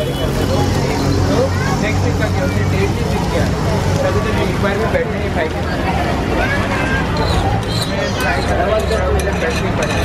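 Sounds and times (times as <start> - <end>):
voices talking: 0.0 - 9.8
metal spatula scraping griddle: 7.2 - 10.0.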